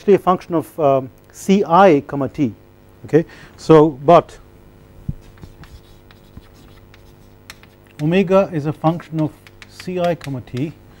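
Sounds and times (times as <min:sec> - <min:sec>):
steady low hum: 0:00.0 - 0:11.0
chalk scratching on chalkboard: 0:05.1 - 0:10.6
sharp chalk taps: 0:05.1 - 0:10.8.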